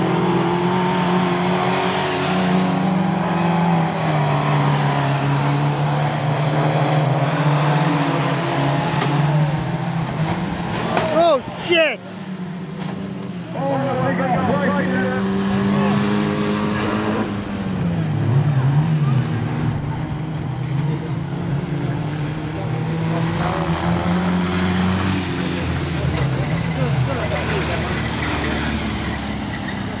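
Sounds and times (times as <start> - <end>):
stock car engines running: 0.0 - 30.0.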